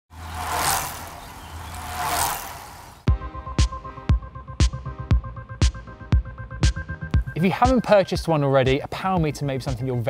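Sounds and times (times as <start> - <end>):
whoosh: 0.2 - 3.1.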